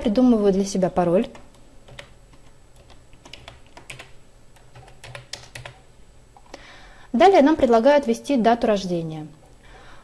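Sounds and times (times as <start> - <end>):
computer keyboard typing: 1.3 - 5.9.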